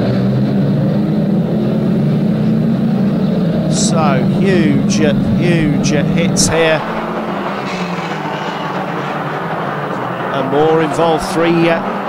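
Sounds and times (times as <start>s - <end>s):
car engines droning: 0.0s - 12.0s.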